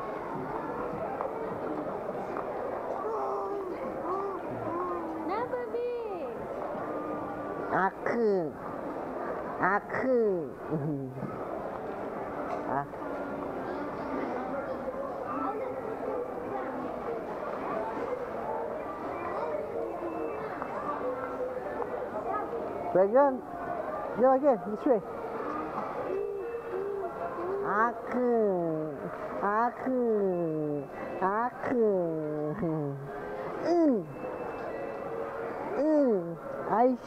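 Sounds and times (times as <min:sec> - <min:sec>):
indistinct chatter of voices: 0:00.0 - 0:37.0
store background noise: 0:00.0 - 0:37.0.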